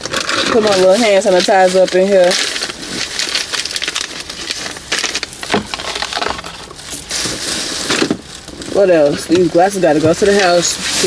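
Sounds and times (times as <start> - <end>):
plastic bag crinkling: 0.0 - 11.0
small objects knocking: 0.0 - 11.0.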